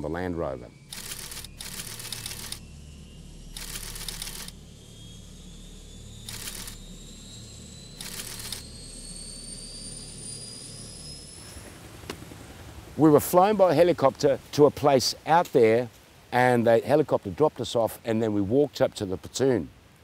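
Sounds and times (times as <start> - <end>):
low hum: 0.0 - 14.6
faint rising whistle: 0.2 - 13.9.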